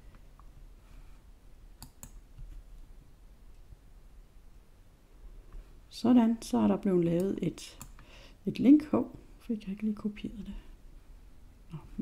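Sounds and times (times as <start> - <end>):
faint mouse clicks: 1.8 - 2.6, 7.1 - 8.0.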